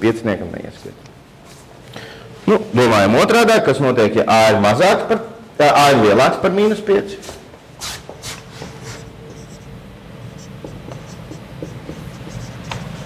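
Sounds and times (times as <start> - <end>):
marker writing on a whiteboard: 8.4 - 9.7, 10.3 - 13.0.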